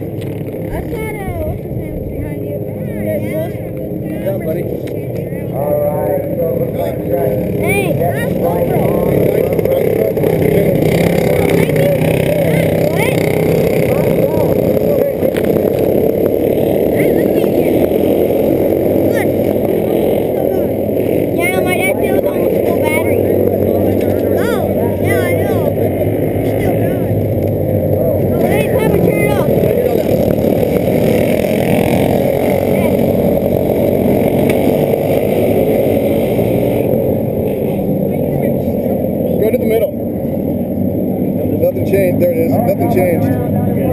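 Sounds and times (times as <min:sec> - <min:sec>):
kart engines droning: 0:00.0 - 0:43.9
people's voices: 0:00.0 - 0:43.9.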